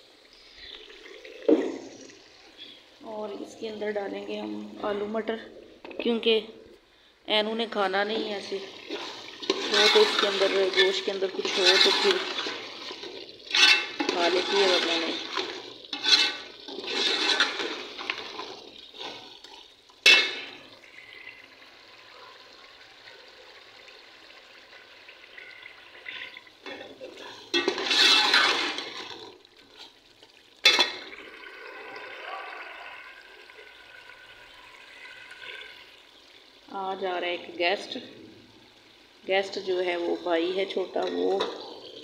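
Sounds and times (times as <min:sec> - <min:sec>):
meat sizzling in a pot: 0:08.2 - 0:22.1, 0:22.8 - 0:31.7.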